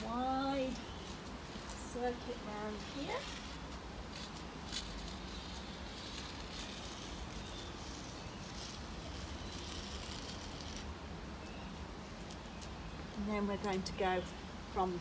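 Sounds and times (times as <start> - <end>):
chalk scraping on concrete: 1.5 - 10.9.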